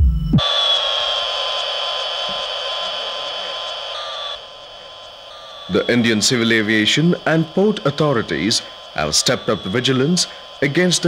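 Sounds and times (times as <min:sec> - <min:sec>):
synthesized electronic tone: 0:00.0 - 0:11.0
hiss: 0:00.4 - 0:11.0.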